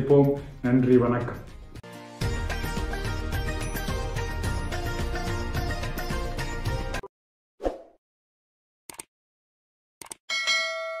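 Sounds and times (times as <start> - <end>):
notification bell chime: 10.3 - 11.0.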